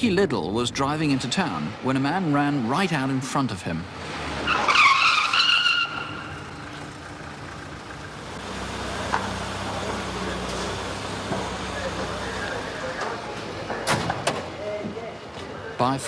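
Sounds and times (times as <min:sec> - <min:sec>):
car tyres squealing: 0:03.9 - 0:13.2
low vehicle engine running: 0:05.8 - 0:15.8.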